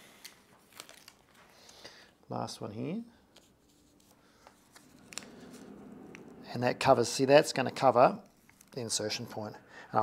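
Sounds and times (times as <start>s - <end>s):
tape crinkling: 0.1s - 1.9s.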